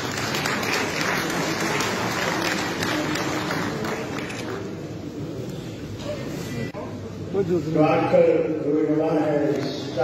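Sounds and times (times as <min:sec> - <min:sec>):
crowd applauding: 0:00.0 - 0:04.6.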